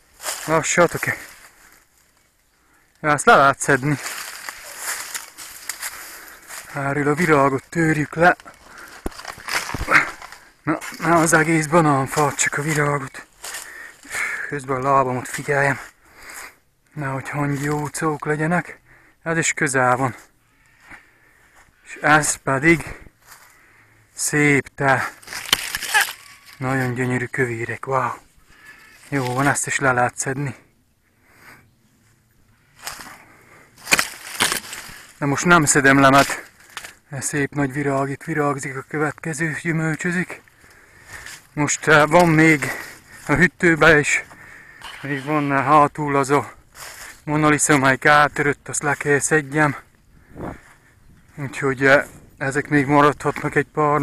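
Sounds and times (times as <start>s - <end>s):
dry leaves rustling underfoot: 0.0s - 14.4s, 25.0s - 29.8s, 32.0s - 54.0s.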